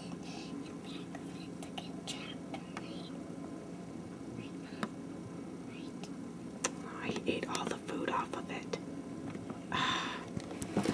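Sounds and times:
person whispering: 0.0s - 3.2s, 4.4s - 4.8s, 5.7s - 6.1s.

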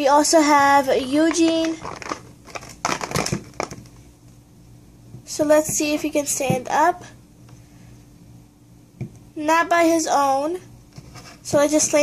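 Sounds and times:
plastic packaging crackling: 1.2s - 4.0s.

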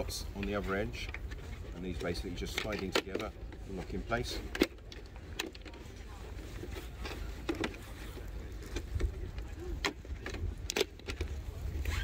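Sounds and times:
wind rumble on microphone: 6.1s - 12.0s.

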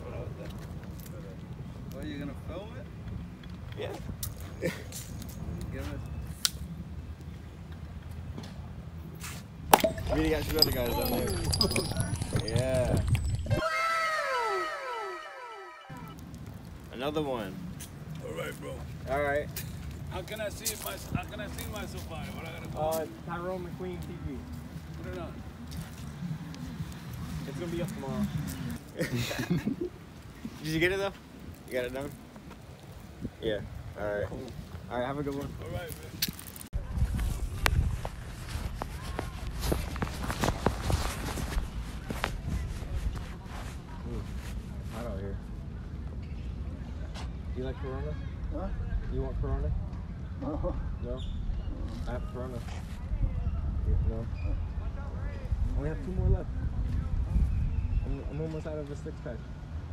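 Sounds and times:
echoing downward sliding tone: 12.4s - 16.2s.

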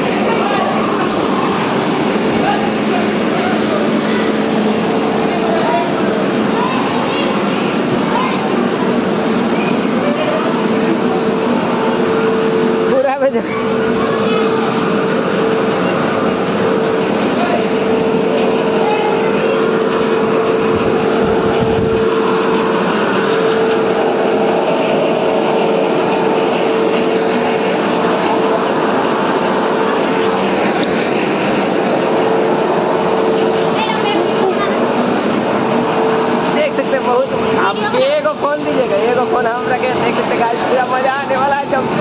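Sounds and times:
electric air blower running: 0.0s - 40.9s
voices: 0.0s - 42.0s.

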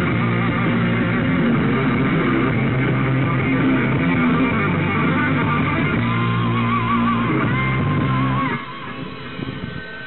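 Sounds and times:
rock band with electric guitar: 0.0s - 10.0s.

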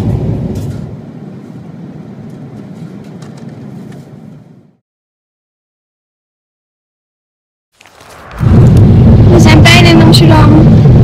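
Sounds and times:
airliner cabin engine drone: 0.0s - 4.8s.

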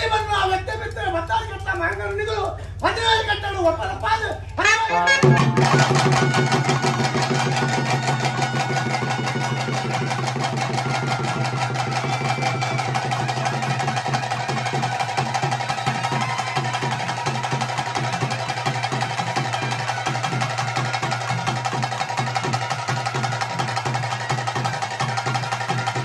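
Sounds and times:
fast drumming: 0.0s - 26.0s
droning wind instrument melody: 3.0s - 26.0s.

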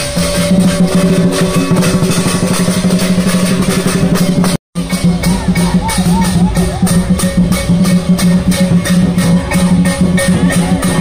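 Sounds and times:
cymbals: 0.0s - 11.0s
drum beating fast: 0.0s - 11.0s.

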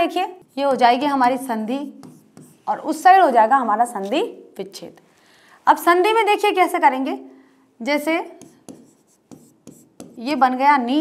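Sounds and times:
chalk scratching on blackboard: 1.5s - 2.8s, 8.4s - 10.3s.

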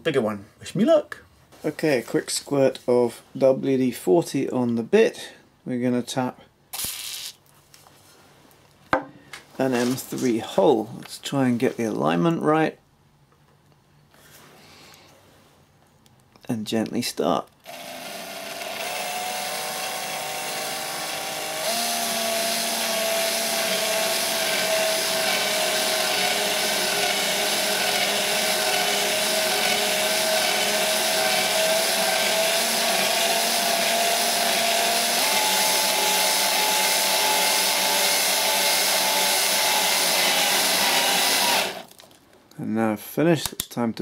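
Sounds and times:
cordless drill motor whine: 17.6s - 41.9s.

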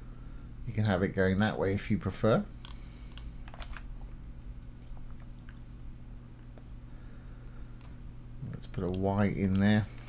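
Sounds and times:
faint high whine: 0.0s - 10.0s
low electrical hum: 0.0s - 10.0s
soft clicks: 8.7s - 9.8s.

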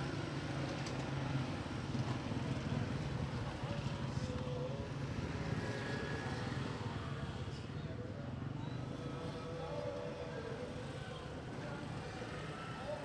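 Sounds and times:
faint voices: 3.2s - 13.0s.

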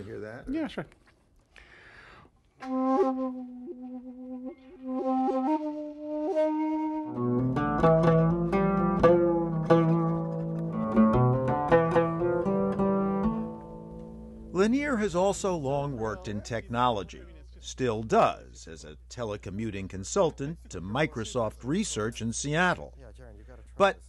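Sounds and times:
bamboo flute held notes: 2.6s - 7.9s
plucked lute: 7.1s - 14.5s.

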